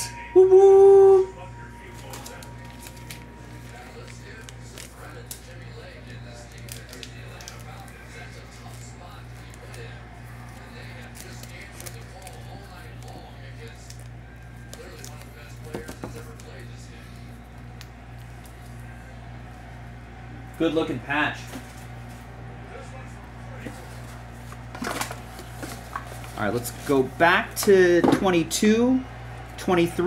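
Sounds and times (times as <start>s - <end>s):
low electrical hum: 0.0s - 30.0s
plastic rustling: 1.9s - 19.0s, 23.6s - 27.7s.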